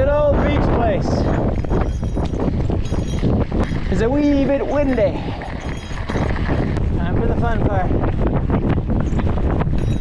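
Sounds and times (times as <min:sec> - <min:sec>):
wind buffeting microphone: 0:00.0 - 0:10.0
bike tyres crunching on gravel: 0:02.5 - 0:06.9.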